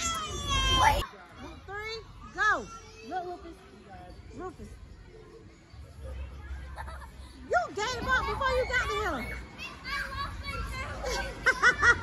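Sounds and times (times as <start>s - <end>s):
children shouting and squealing: 0.0s - 1.1s, 8.0s - 12.0s.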